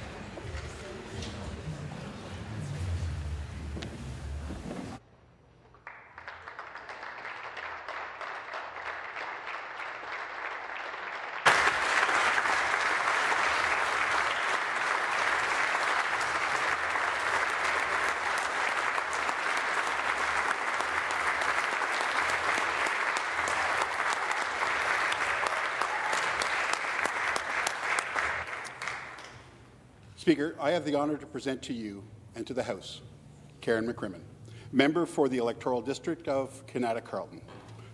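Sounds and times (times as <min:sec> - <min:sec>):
people applauding: 0:05.7 - 0:29.5.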